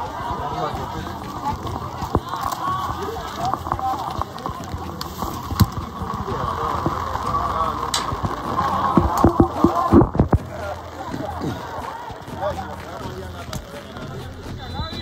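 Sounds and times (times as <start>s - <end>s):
distant voices: 0.0s - 15.0s
heavy rain pattering: 0.0s - 15.0s.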